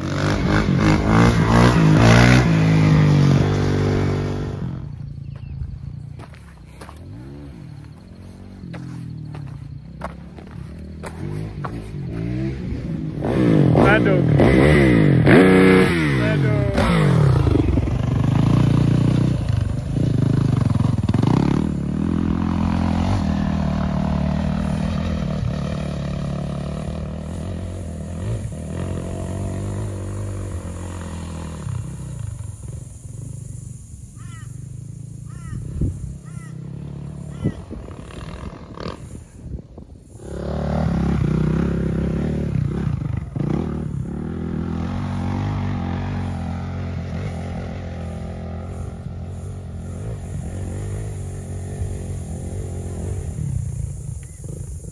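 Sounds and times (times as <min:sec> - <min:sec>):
dirt bike engine: 0:00.0 - 0:54.9.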